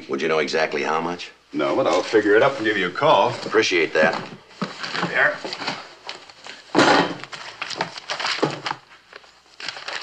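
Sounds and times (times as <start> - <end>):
pages of receipt book rustling: 4.6 - 10.0.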